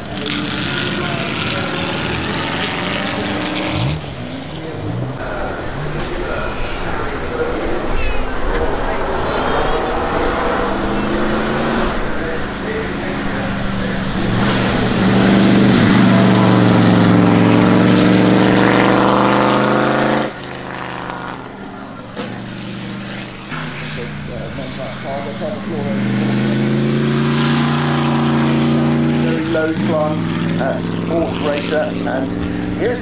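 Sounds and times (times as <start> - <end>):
race car engine pulling away: 0.0 - 33.0.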